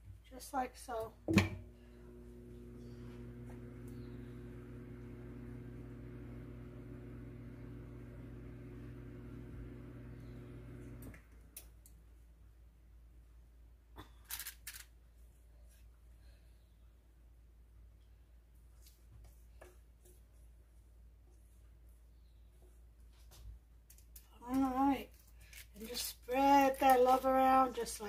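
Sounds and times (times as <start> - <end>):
steady electrical hum with tones: 0.5 - 11.9.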